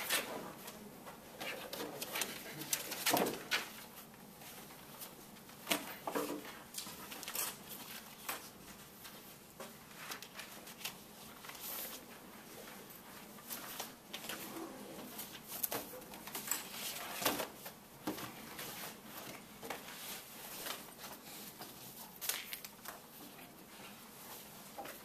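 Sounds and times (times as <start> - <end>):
paper rustling: 1.4 - 14.5.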